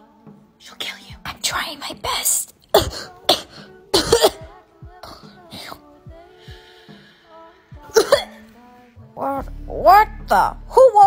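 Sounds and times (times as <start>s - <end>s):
woman clearing throat: 2.7s - 4.5s, 7.9s - 8.4s
woman coughing: 2.7s - 4.5s, 7.9s - 8.4s.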